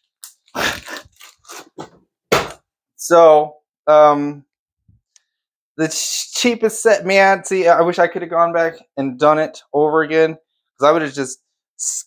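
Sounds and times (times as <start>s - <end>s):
plastic packet crinkling: 0.0s - 1.7s.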